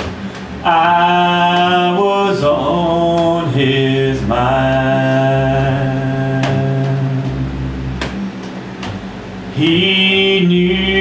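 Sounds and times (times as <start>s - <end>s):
low musical accompaniment: 0.0s - 11.0s
man singing long held notes: 0.6s - 7.7s, 9.5s - 11.0s.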